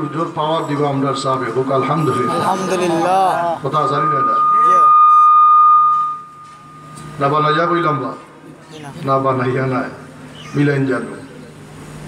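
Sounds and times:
microphone feedback whistle: 0:00.0 - 0:08.2.

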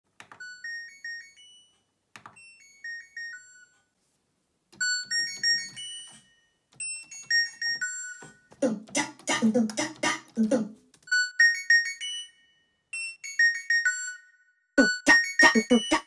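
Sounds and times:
washing machine beep melody: 0:00.4 - 0:01.8, 0:02.4 - 0:03.8, 0:04.8 - 0:10.3, 0:11.1 - 0:16.0
synthesizer keyboard melody: 0:07.0 - 0:12.3, 0:13.4 - 0:16.0.

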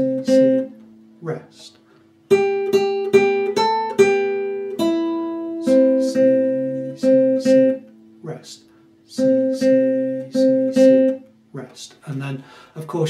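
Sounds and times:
classical guitar melody: 0:00.0 - 0:11.8.

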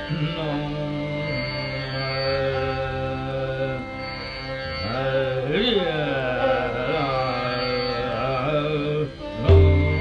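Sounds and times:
steady drone: 0:09.4 - 0:10.0.

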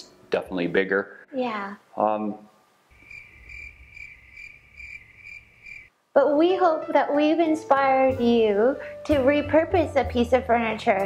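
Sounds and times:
crickets chirping: 0:02.9 - 0:06.0.

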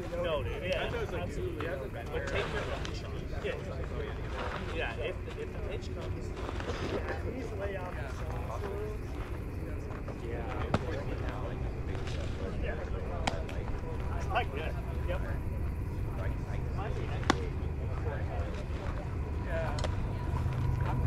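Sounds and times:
chatter of voices: 0:00.0 - 0:21.0
low rumble: 0:13.5 - 0:21.0.

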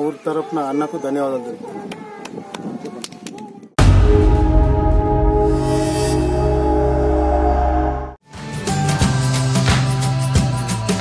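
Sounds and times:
theme music: 0:03.8 - 0:09.6.

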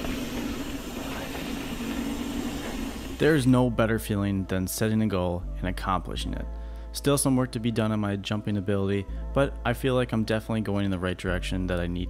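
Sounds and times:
bike tyre noise on dirt: 0:00.0 - 0:03.4.

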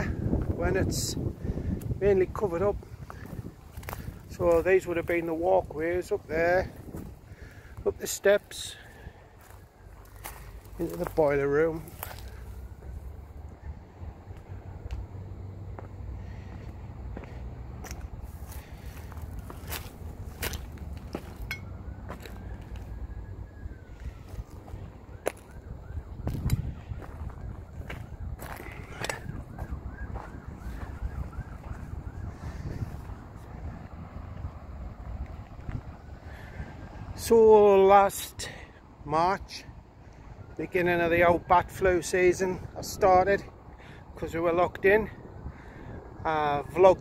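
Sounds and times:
wind buffeting microphone: 0:00.0 - 0:37.2, 0:39.7 - 0:47.0.

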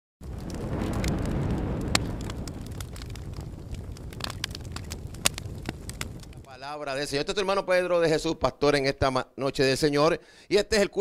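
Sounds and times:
fire crackles and pops: 0:00.2 - 0:07.6
fire rumble: 0:00.2 - 0:07.6.

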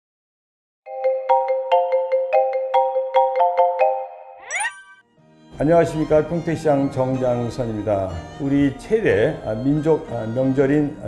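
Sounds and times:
phone ringtone melody: 0:00.9 - 0:05.1.

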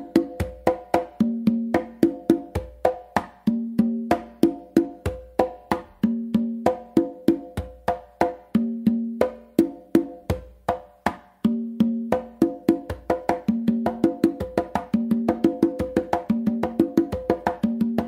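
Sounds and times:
congas played by hand: 0:00.0 - 0:18.0.

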